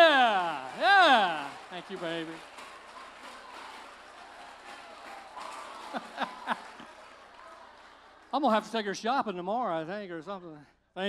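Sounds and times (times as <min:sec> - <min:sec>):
audience applauding: 0:00.0 - 0:09.0.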